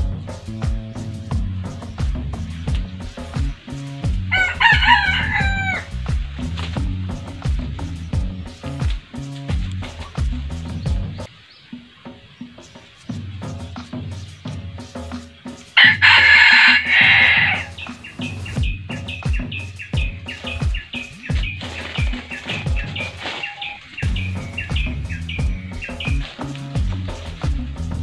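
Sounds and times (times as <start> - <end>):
background music with low beat: 0.0 - 28.0
rooster crowing: 4.3 - 6.0, 15.8 - 17.9.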